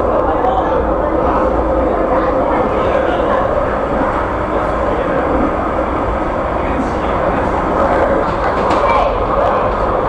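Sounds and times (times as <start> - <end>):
tram running: 0.0 - 10.0.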